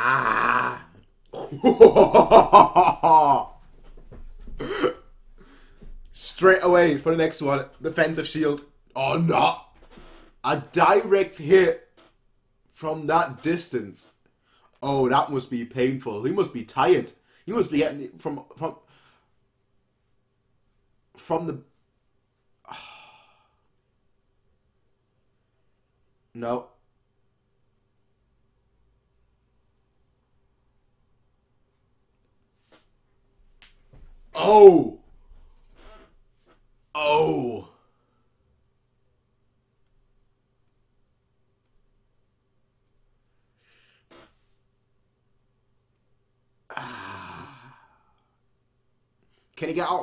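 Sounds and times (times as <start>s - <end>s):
man laughing heartily: 1.4s - 3.6s
man exhaling: 22.7s - 23.7s, 46.7s - 48.3s.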